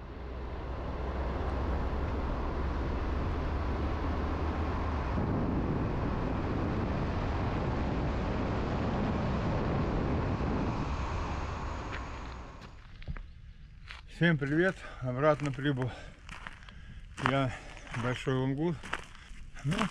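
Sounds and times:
low engine hum: 0.0s - 19.9s
road and tyre noise: 0.0s - 19.9s.

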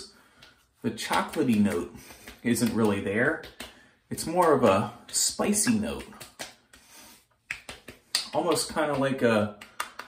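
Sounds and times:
palm slapping wet skin: 0.2s - 10.0s.

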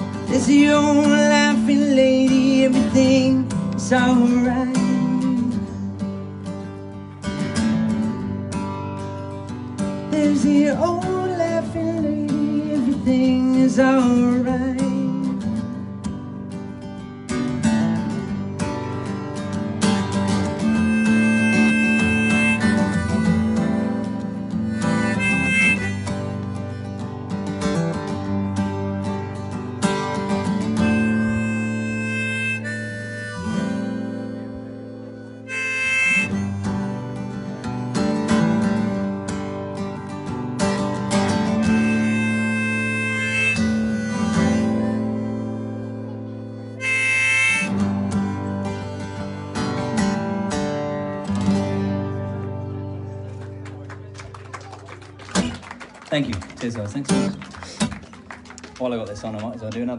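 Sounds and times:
strummed acoustic guitar: 0.0s - 54.1s, 56.6s - 58.4s
harmonica solo: 18.1s - 39.4s, 40.8s - 52.2s.

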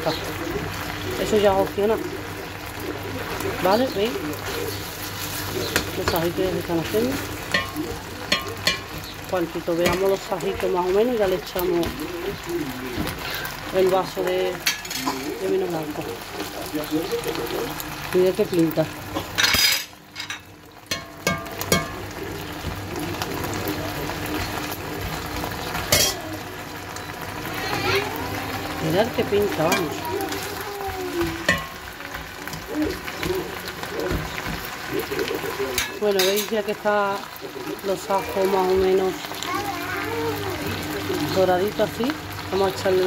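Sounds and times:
meat sizzling in hot oil: 0.0s - 43.0s.

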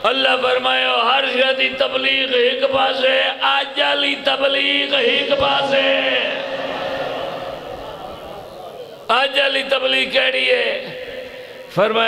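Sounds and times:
man chanting through loudspeakers: 0.0s - 7.6s.

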